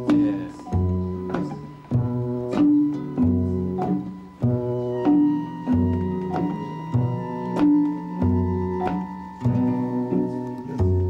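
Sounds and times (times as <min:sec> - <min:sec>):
fingerstyle classical guitar: 0:00.0 - 0:11.0.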